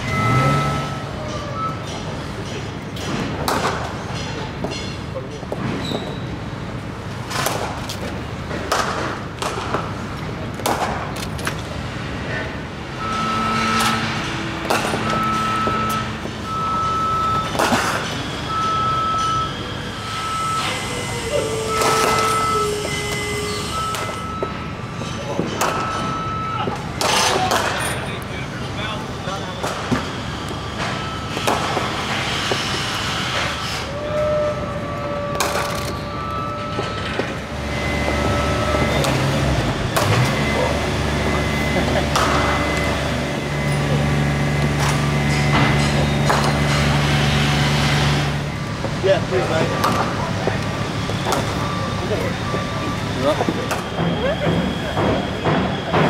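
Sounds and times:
high beeping pulses: 0.0 - 2.0, 12.9 - 27.0, 35.8 - 46.2
distant voices: 0.0 - 56.0
outdoor hum: 0.0 - 56.0.

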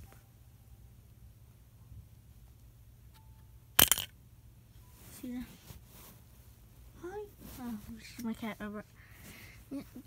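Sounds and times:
mouse trap snapping: 3.8 - 4.1.

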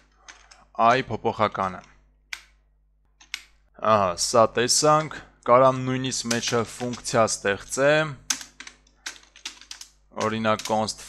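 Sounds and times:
keyboard typing clicks: 6.2 - 7.2.

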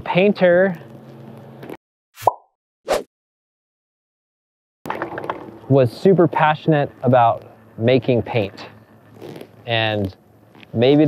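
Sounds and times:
plop with rising pitch: 2.2 - 2.5.

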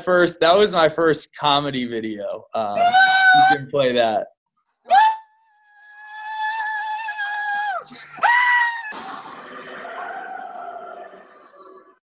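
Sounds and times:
high scream: 4.9 - 11.7
loud crash: 8.9 - 11.4.

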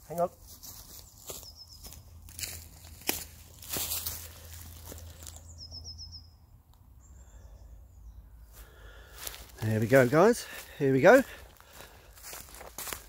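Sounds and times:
footsteps through ground cover: 0.0 - 5.5, 8.5 - 13.0
bird singing high notes: 5.4 - 6.4.

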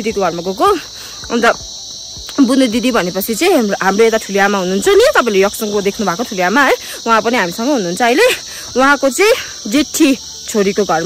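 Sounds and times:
woman talking: 0.0 - 1.7, 2.3 - 11.0
insects droning: 0.0 - 11.0.

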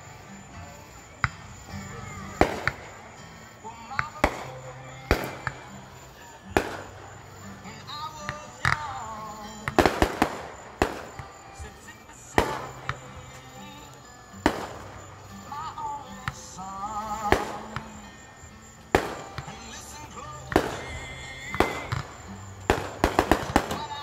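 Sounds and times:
fireworks bursting: 0.0 - 24.0.

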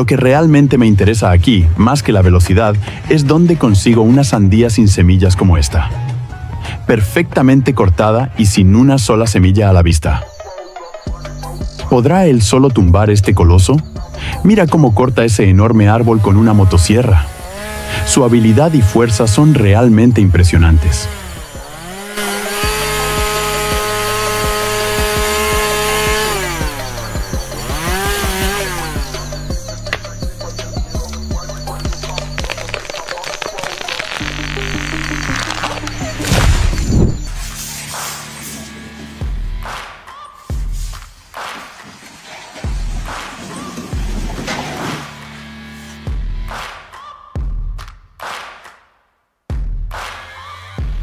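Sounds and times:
background music with steady beat: 10.3 - 15.6, 16.8 - 32.7, 34.2 - 41.8, 45.2 - 51.0
chainsaw cutting tree trunk: 15.8 - 37.4
deep bass hit: 36.0 - 37.4.

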